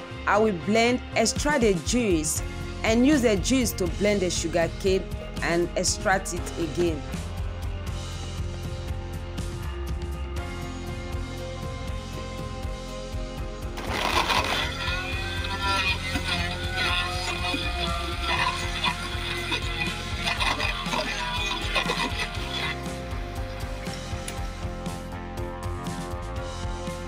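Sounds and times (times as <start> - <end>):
instrumental background music: 0.0 - 27.0
person singing: 14.5 - 22.8.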